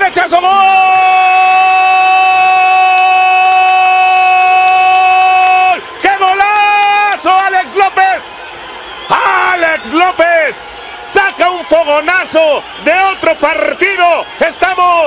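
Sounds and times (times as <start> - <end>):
excited shouted commentary: 0.0 - 15.0.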